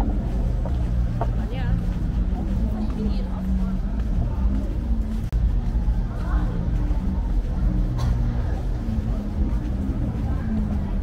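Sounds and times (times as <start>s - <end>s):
low rumble of traffic: 0.0s - 11.0s
people talking: 0.0s - 11.0s.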